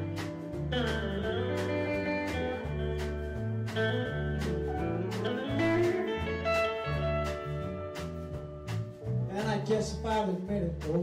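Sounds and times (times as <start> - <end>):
country band playing: 0.0 - 11.0
steady drum beat: 0.0 - 11.0.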